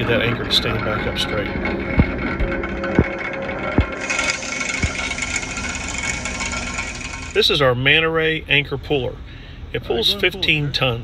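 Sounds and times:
plate compactor mechanical drone: 0.0 - 8.0.

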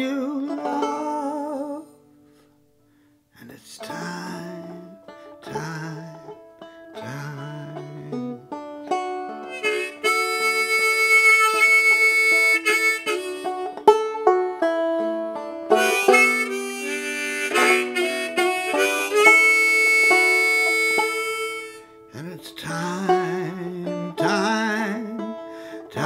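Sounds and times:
clawhammer banjo: 0.0 - 2.0, 3.8 - 26.0
harmonica melody: 7.8 - 26.0.

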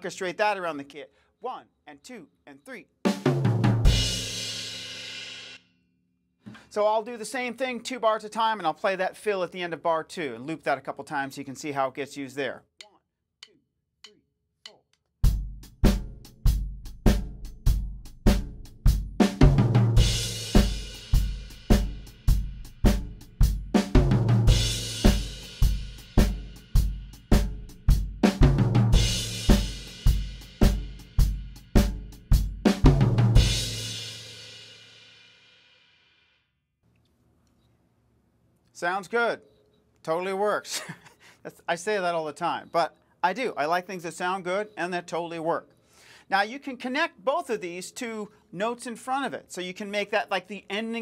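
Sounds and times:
drum kit groove: 3.0 - 5.6, 14.7 - 34.9.

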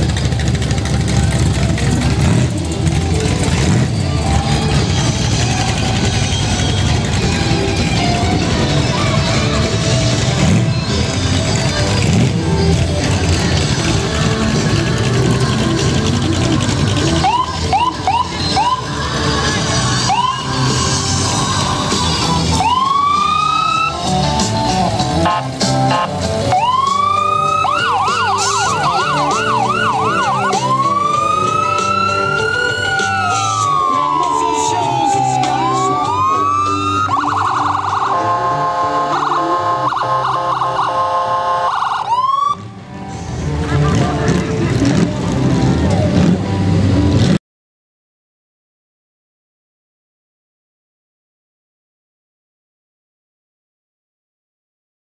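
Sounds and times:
emergency vehicle siren: 0.2 - 42.9
music from loudspeakers: 18.0 - 39.7.

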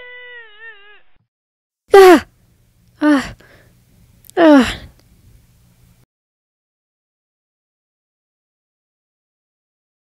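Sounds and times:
woman yelping in pain: 1.9 - 2.3, 3.0 - 3.4, 4.4 - 4.9.

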